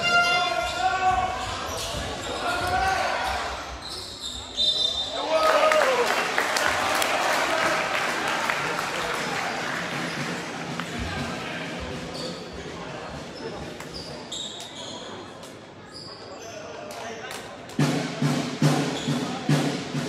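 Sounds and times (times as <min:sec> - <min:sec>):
people shouting in hall: 0:05.1 - 0:09.6.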